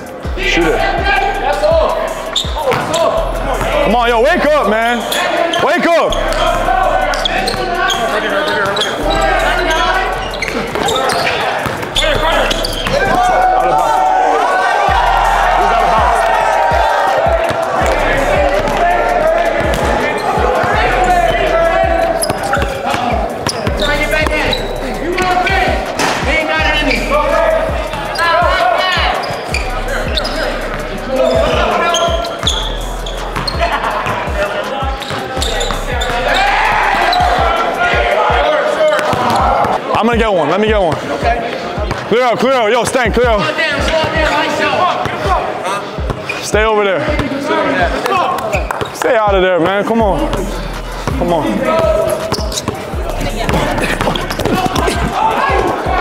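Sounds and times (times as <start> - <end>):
people shouting and talking: 0.0 - 56.0.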